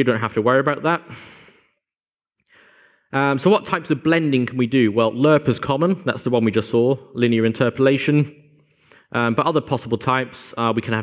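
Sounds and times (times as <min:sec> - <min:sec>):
faint inhale: 0:01.1 - 0:01.8, 0:02.4 - 0:03.1, 0:08.6 - 0:09.1
man exhaling: 0:01.1 - 0:01.8.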